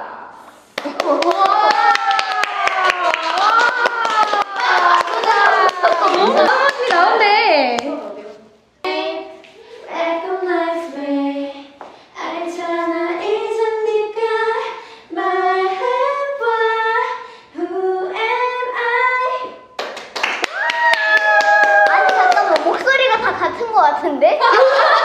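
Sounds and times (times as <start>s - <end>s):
hand clapping: 0.8s - 7.1s, 19.8s - 23.0s
women singing a cappella: 4.5s - 19.8s.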